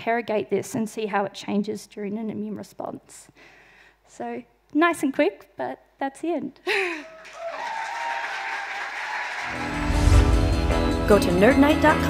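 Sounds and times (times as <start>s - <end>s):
audience applauding: 7.0s - 10.5s
music with heavy bass: 9.6s - 12.0s.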